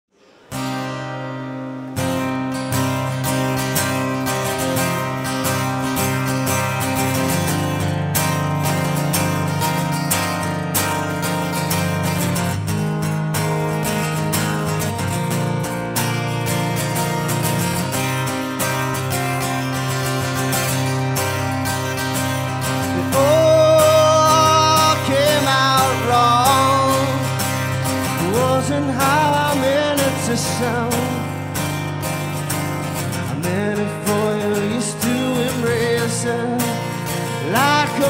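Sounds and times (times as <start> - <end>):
acoustic guitar strumming: 0.1 - 38.0.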